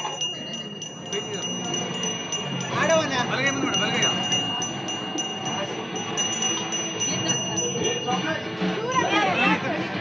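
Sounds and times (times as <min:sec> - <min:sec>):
brass hand bell ringing: 0:00.0 - 0:09.1.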